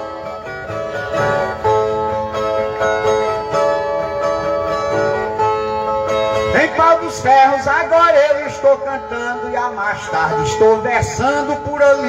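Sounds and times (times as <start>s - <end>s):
man singing: 6.5s - 12.0s.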